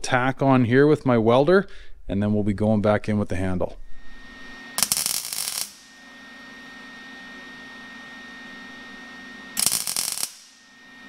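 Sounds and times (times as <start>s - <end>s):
steady hum: 1.1s - 11.0s
electric welder arc crackling: 4.7s - 6.2s, 9.5s - 11.0s.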